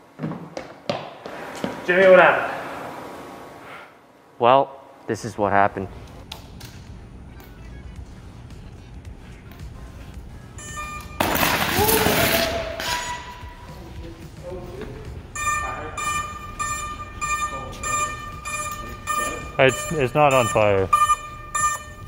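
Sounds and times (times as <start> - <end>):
low background hum: 0.0 - 22.0
high electronic tone: 10.6 - 11.5, 15.3 - 22.0.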